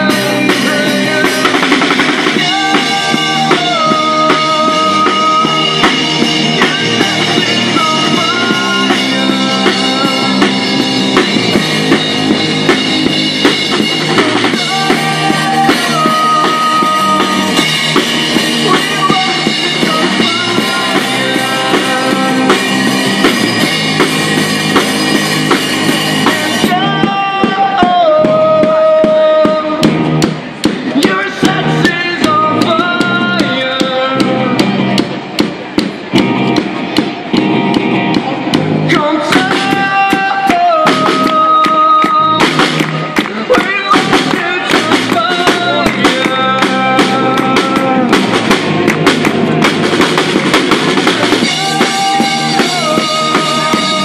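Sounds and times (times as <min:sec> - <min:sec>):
drum kit beat: 0:00.0 - 0:54.0
electric guitars: 0:00.0 - 0:54.0.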